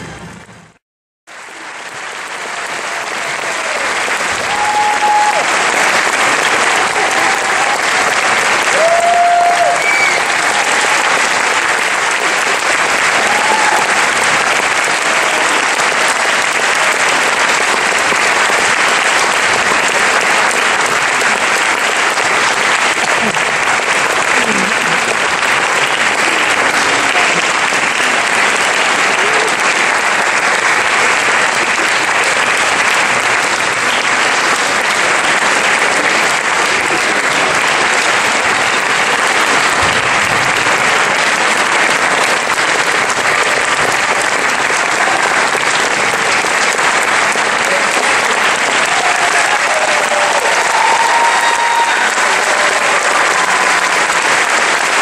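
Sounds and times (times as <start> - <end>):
audience applauding: 0.0 - 55.0.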